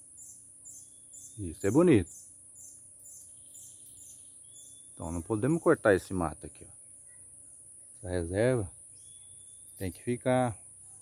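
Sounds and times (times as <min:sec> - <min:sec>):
high chirping: 0:00.0 - 0:05.6, 0:08.8 - 0:10.2
insects buzzing: 0:00.0 - 0:11.0.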